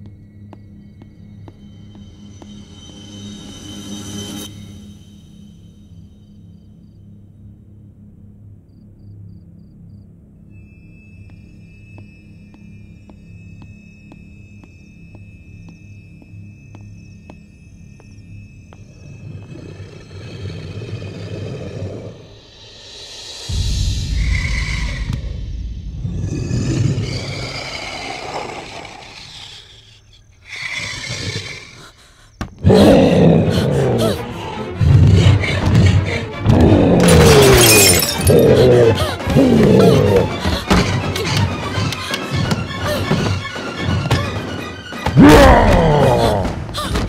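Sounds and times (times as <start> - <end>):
tense horror score: 0.0 - 47.0
loud jump-scare hit: 23.5 - 27.0
deep monster roar: 24.2 - 29.8, 32.6 - 37.6, 38.3 - 40.6, 45.2 - 46.6.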